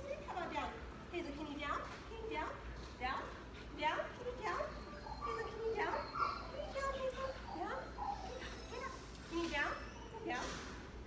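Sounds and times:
dog whining: 4.4s - 10.4s.

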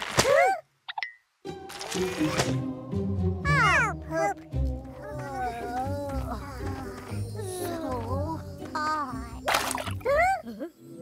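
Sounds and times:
cartoon background music: 1.4s - 11.0s.

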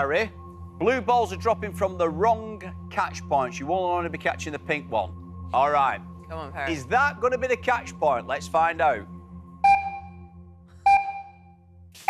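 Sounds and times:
low steady drone: 0.0s - 12.0s
electronic countdown beep: 9.5s - 11.6s.

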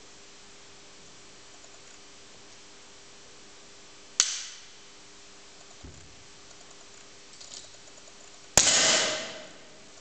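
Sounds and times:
air pistol shot with echo: 4.2s - 4.6s, 8.6s - 9.8s.

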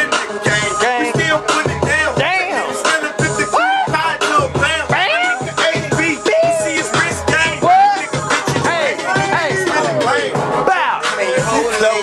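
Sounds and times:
hip hop beat: 0.0s - 12.0s
person rapping: 0.0s - 12.0s.

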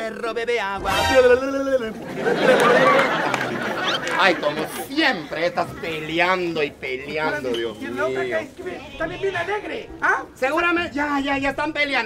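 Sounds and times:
audience chattering: 0.8s - 10.6s
audience laughing: 1.7s - 6.2s.

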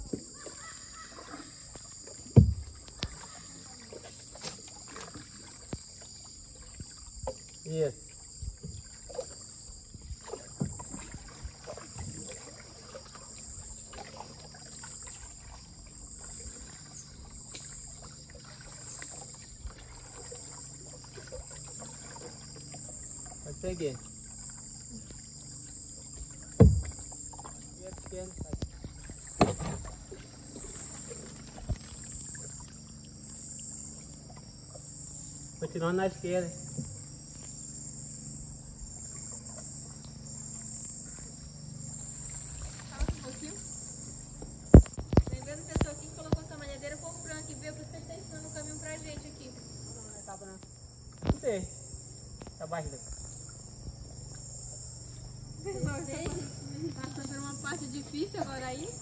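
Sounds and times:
insects buzzing: 0.0s - 59.0s
paddle strokes in water: 0.0s - 59.0s
wood knocking on wood: 2.3s - 3.1s, 26.6s - 27.0s.

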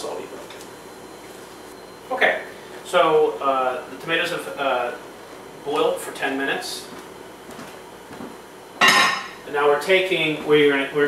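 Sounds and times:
kitchenware clanking: 8.8s - 9.4s.

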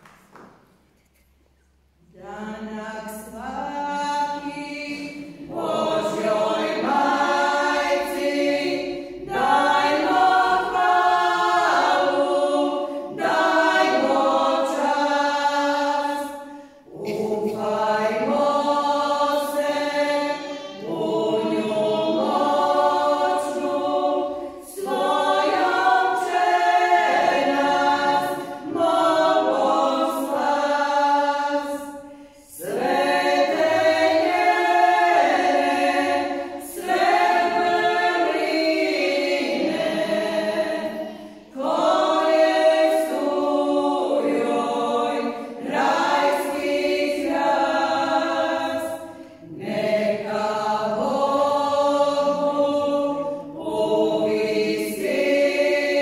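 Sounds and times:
women singing a cappella: 2.0s - 56.0s.

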